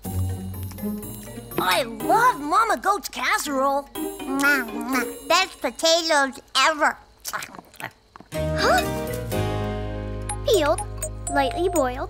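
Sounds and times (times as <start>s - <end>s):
background music low notes: 0.0s - 6.1s, 8.3s - 12.0s
cartoon chewing sounds: 7.1s - 9.0s.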